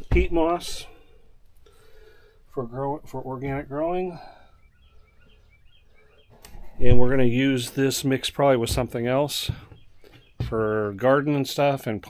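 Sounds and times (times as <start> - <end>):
man speaking: 0.0 - 1.0, 2.5 - 4.4, 6.8 - 9.7, 10.4 - 12.0.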